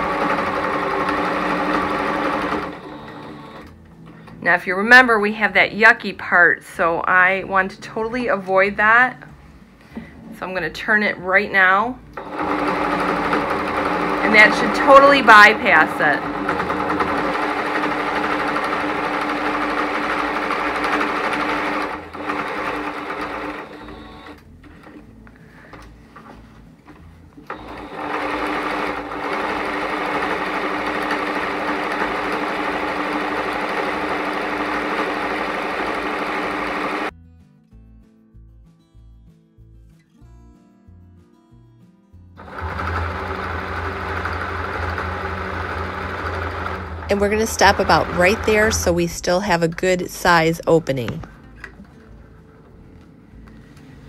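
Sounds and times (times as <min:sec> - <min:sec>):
sewing machine stitching: 0:00.0 - 0:03.7, 0:12.2 - 0:25.0, 0:27.4 - 0:37.1, 0:42.4 - 0:51.3.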